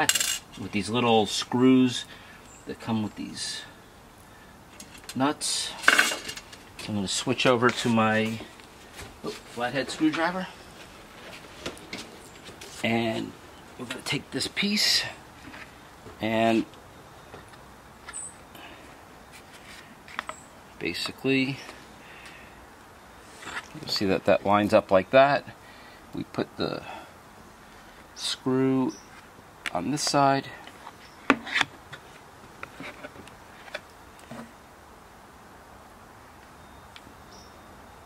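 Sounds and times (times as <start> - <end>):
faint background hiss: 0.0 - 38.0.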